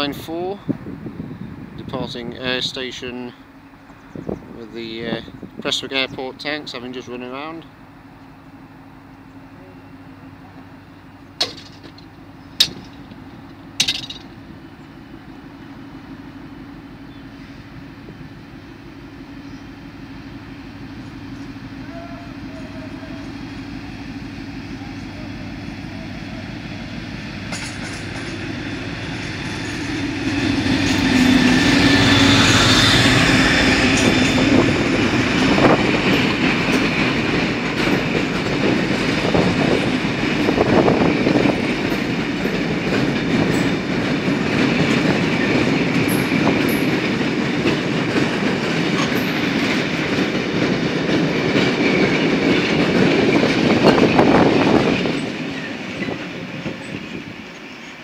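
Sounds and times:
diesel locomotive passing: 0:00.0 - 0:58.0
wagons clacking over rail joints: 0:11.4 - 0:14.4, 0:25.0 - 0:31.8, 0:33.0 - 0:58.0.

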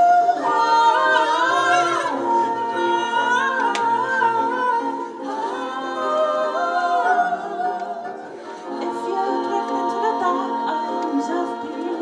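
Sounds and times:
backing vocalists singing harmony: 0:00.0 - 0:12.0
woman singing lead: 0:00.0 - 0:12.0.

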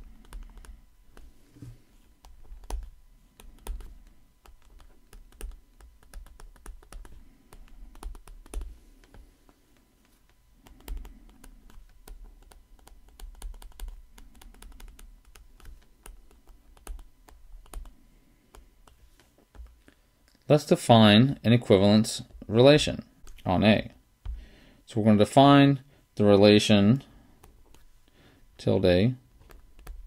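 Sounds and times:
hand bumping tablet: 0:00.0 - 0:19.9, 0:24.2 - 0:24.5
stylus tapping on tablet screen: 0:02.2 - 0:09.2.

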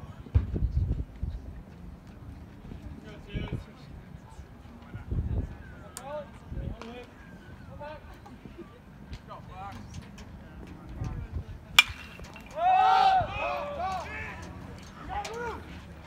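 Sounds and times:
chatter of players and spectators: 0:00.0 - 0:16.0
bat striking baseball: 0:11.8 - 0:12.8
voices yelling: 0:11.8 - 0:16.0.

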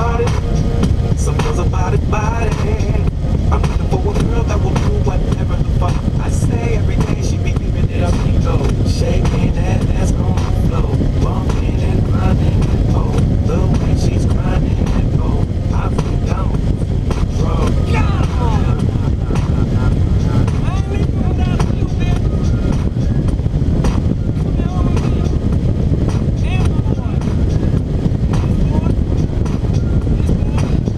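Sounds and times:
motorcycle engine rumble: 0:00.0 - 0:30.9
wind noise on microphone: 0:00.0 - 0:30.9.

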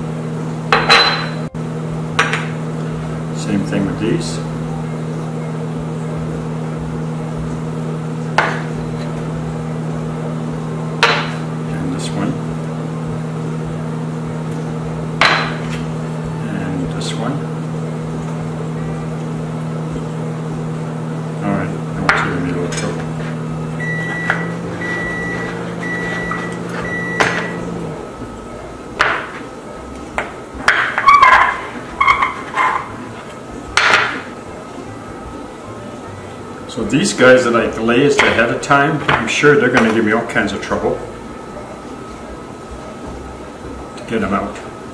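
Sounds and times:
kitchen appliance hum: 0:00.0 - 0:44.9.

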